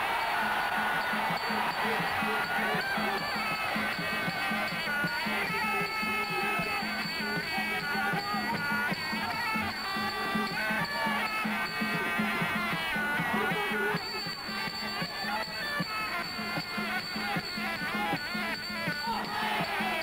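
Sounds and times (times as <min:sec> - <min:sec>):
reed pipe wavering melody: 0:00.8 - 0:20.0.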